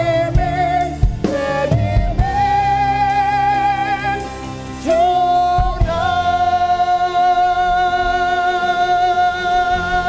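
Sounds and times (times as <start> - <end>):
backing music: 0.0 - 10.0
man and woman singing duet: 0.0 - 10.0.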